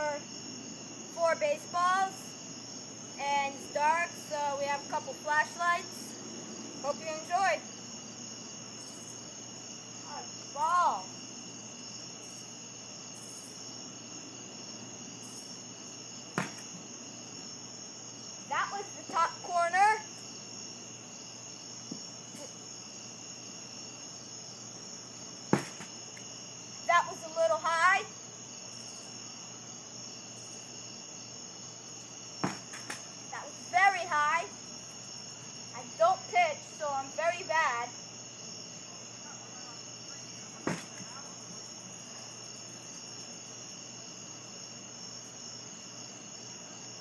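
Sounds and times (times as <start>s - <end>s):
crickets chirring: 0.0s - 47.0s
baseball hitting target: 16.4s - 16.7s, 25.5s - 25.9s, 32.4s - 33.0s, 40.6s - 41.0s.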